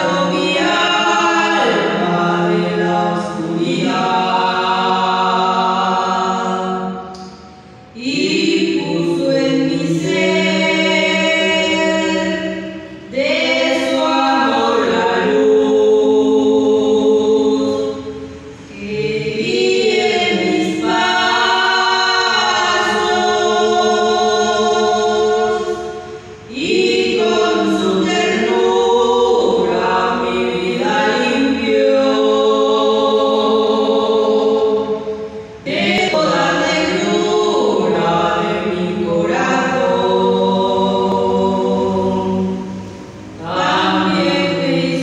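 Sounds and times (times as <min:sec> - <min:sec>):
group singing a hymn: 0:00.0 - 0:45.0.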